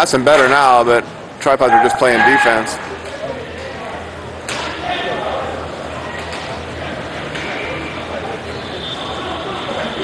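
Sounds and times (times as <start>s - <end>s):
rink background noise: 0.0s - 10.0s.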